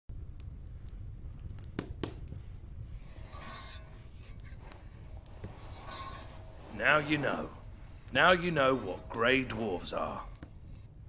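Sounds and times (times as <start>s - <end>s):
wood fire crackling: 0.1s - 11.0s.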